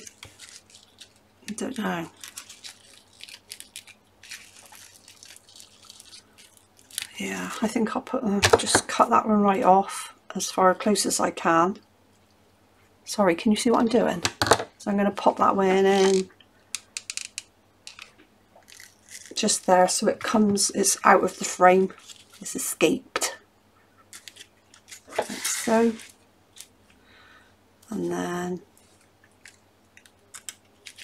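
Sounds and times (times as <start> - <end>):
paper and card crinkling: 0.0 - 7.7, 17.9 - 22.6, 24.0 - 26.8, 28.8 - 31.0.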